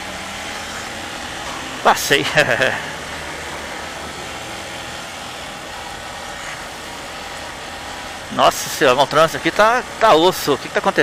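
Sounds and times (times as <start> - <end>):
hum of surrounding cars: 0.0 - 11.0
motorcycle engine running: 0.0 - 11.0.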